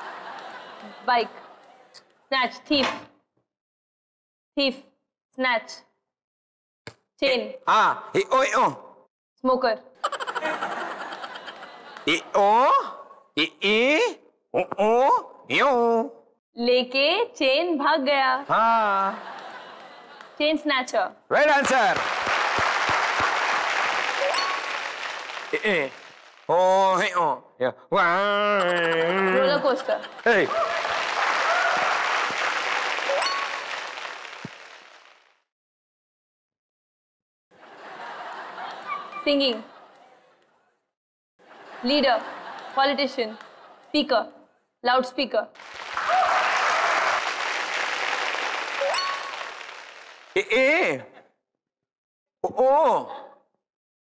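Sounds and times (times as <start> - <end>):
applause: 21.3 - 26.8, 29.5 - 35.4, 45.6 - 50.5
person speaking: 28.1 - 30.6.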